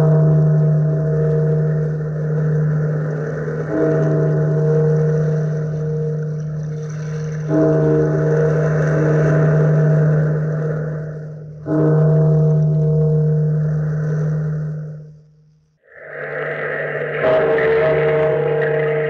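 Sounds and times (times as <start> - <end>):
large bell tolling: 0.0 - 15.2, 15.9 - 19.0
steady rushing noise: 15.8 - 19.0.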